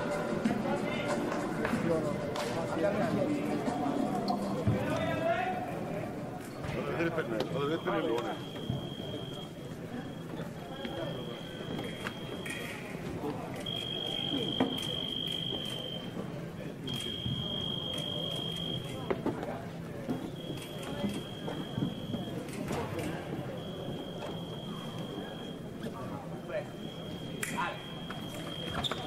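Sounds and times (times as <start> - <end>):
voices in a hall: 0.0 - 29.0.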